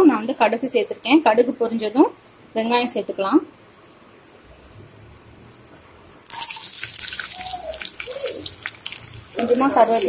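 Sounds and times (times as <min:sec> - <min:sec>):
shallots sizzling in hot oil: 0:06.2 - 0:10.0
mustard seeds spluttering: 0:06.3 - 0:10.0.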